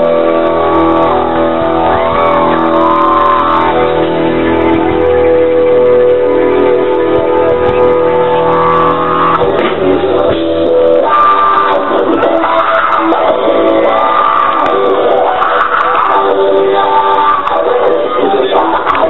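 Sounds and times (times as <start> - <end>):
rock band sustained chord: 0.0 - 19.0.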